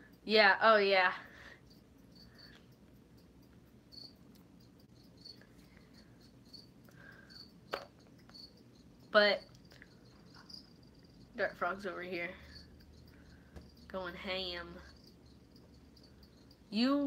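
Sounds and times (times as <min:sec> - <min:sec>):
cricket chirping: 0:01.1 - 0:17.0.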